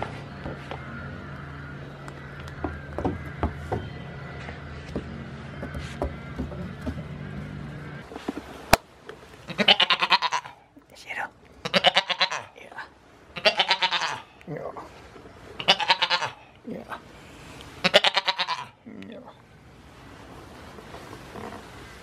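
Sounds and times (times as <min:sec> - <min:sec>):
goat bleating: 0:09.5 - 0:10.7, 0:11.6 - 0:12.6, 0:13.4 - 0:14.3, 0:15.6 - 0:16.6, 0:17.8 - 0:18.8.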